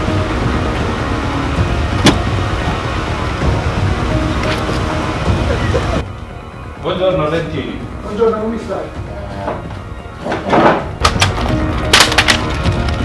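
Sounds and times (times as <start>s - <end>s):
street traffic: 0.0s - 13.0s
car door clicking: 1.9s - 2.4s.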